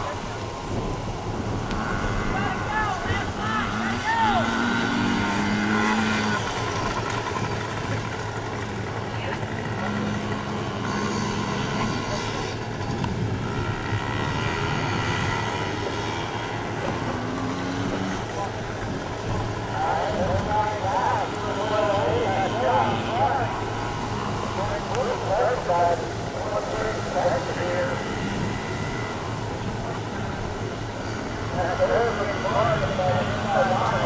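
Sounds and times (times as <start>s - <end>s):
dirt bike engines buzzing: 0.0s - 34.0s.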